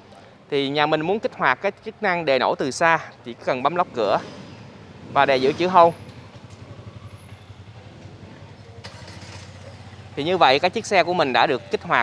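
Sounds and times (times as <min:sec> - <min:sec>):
car engine idling: 0:03.4 - 0:12.0.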